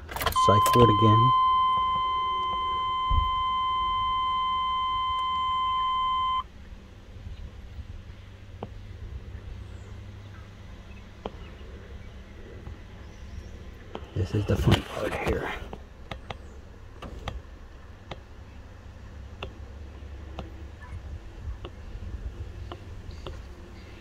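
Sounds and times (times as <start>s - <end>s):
dashboard warning tone beeping: 0.2s - 6.5s.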